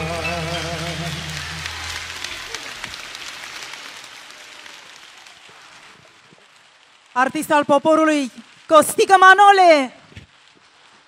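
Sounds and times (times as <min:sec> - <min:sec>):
concert audience applauding: 0:00.0 - 0:07.0.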